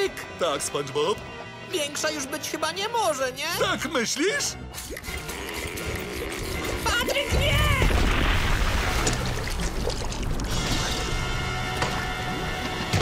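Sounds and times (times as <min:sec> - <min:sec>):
background music: 0:00.0 - 0:13.0
wet splash of paint: 0:04.7 - 0:13.0.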